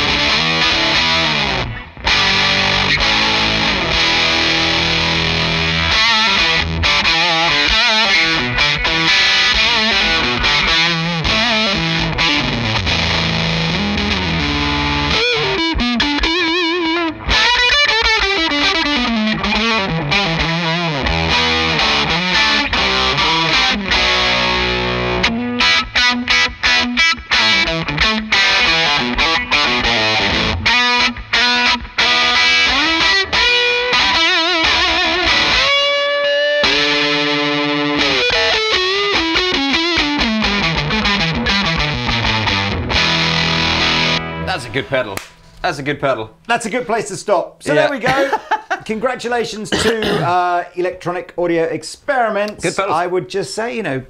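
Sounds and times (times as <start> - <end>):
distorted electric guitar lead: 0.0 - 45.6.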